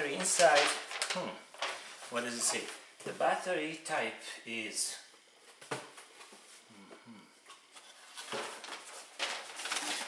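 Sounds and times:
handling cardboard box and paper: 0:00.0 - 0:02.8, 0:07.8 - 0:10.0
person humming mm-hmm: 0:06.7 - 0:07.4.

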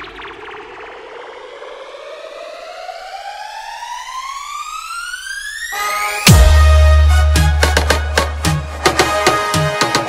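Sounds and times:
electronic rising siren tone: 0:00.0 - 0:06.4.

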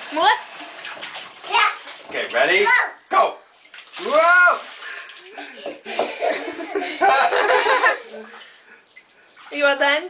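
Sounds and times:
toddler laughing loudly: 0:05.4 - 0:08.2.

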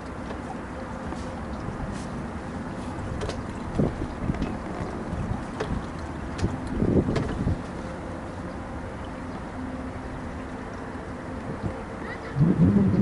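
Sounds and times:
wind rumbling on microphone: 0:03.0 - 0:07.7, 0:11.4 - 0:13.0
knocks and thumps on boat: 0:03.0 - 0:07.8
faint steady drone: 0:07.6 - 0:13.0.

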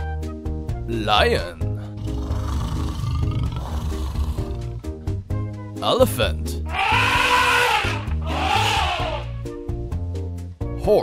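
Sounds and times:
background music: 0:00.0 - 0:11.0
elephant trumpeting: 0:02.0 - 0:04.8, 0:06.7 - 0:09.4.

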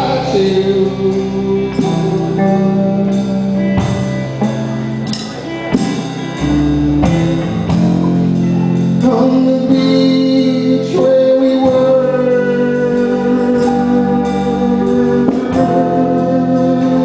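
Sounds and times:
low bass notes: 0:00.0 - 0:17.0
strummed electric guitar chords: 0:00.0 - 0:17.0.

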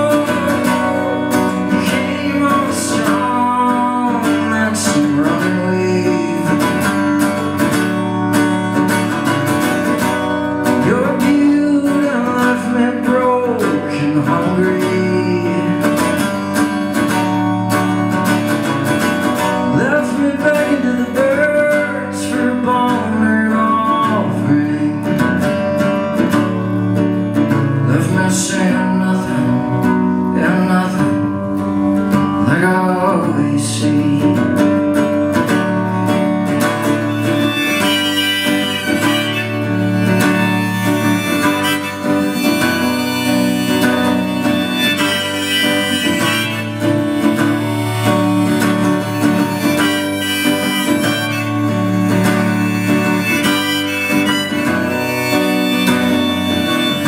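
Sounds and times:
man singing: 0:00.0 - 0:08.0, 0:10.6 - 0:17.3, 0:19.3 - 0:25.8, 0:27.4 - 0:35.6, 0:36.8 - 0:57.0
acoustic guitar: 0:00.0 - 0:57.0.

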